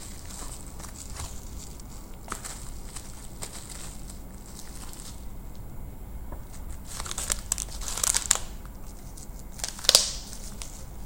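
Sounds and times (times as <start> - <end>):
bubble wrap crinkling: 0.0 - 5.7, 6.4 - 11.0.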